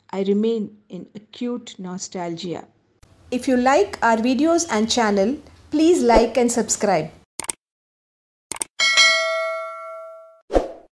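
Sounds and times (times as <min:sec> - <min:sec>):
notification bell ding: 0:08.8 - 0:10.4.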